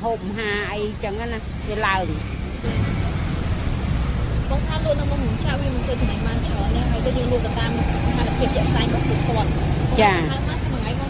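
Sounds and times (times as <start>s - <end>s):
steady low rumble: 0.0s - 11.0s
voices talking: 0.0s - 11.0s.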